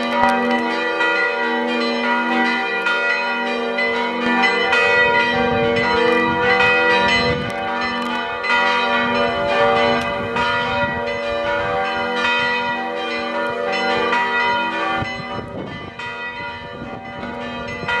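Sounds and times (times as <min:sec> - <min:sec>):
church bells pealing: 0:00.0 - 0:18.0.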